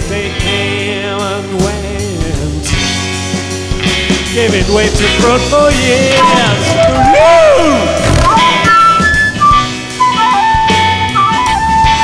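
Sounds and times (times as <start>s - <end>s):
bass: 0.0s - 12.0s
drums: 0.0s - 12.0s
lead melody held notes: 5.7s - 9.8s.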